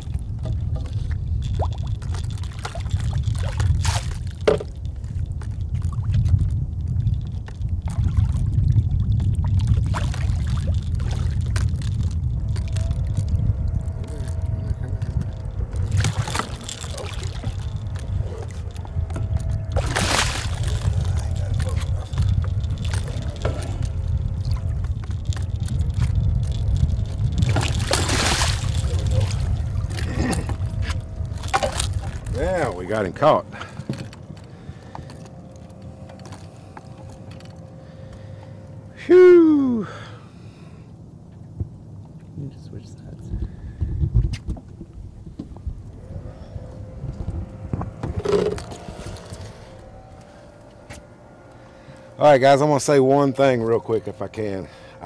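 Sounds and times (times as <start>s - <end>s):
steady low rumble: 0.0s - 55.0s
fish thrashing water splashing: 19.7s - 22.2s, 27.4s - 30.5s.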